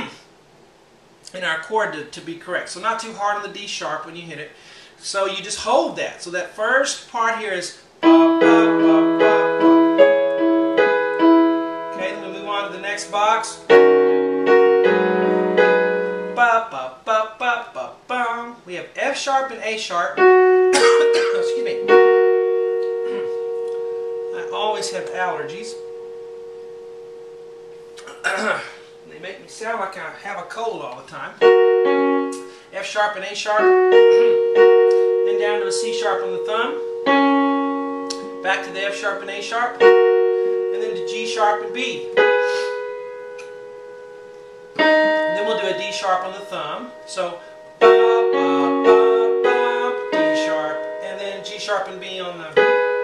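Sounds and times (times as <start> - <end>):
piano chord ringing: 8.0 - 16.6, 20.1 - 30.5, 31.3 - 53.0.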